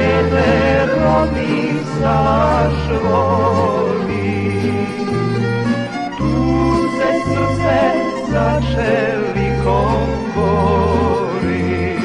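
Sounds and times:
person singing with vibrato: 0:00.0 - 0:05.4, 0:06.2 - 0:12.0
instrumental accompaniment with bass: 0:00.0 - 0:12.0.

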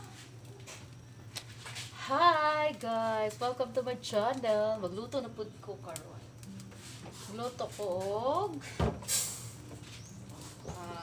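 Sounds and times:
short high hiss: 0:09.0 - 0:09.6.

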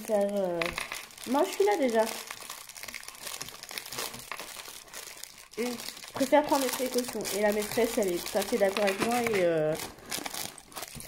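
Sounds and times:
crinkly wrapping crackling: 0:00.0 - 0:11.0.

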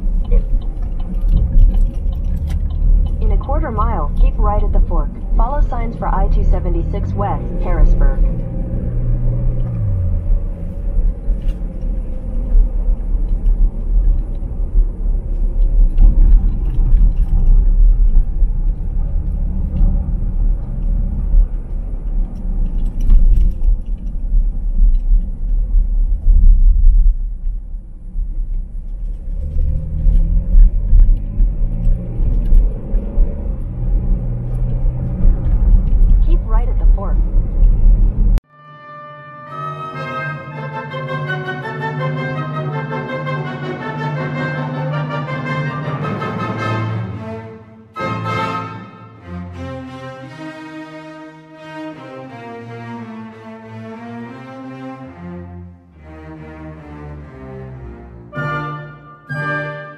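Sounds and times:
car interior road rumble: 0:00.0 - 0:38.4.

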